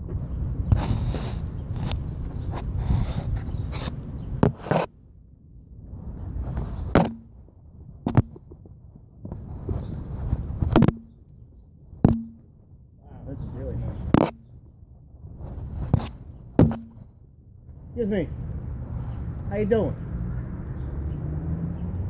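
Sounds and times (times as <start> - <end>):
phone knocks: 12.1 - 12.4, 16.6 - 17.0.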